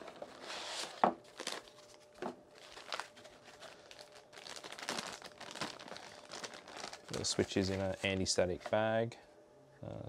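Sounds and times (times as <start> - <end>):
plastic bag crinkling: 0.0 - 8.7.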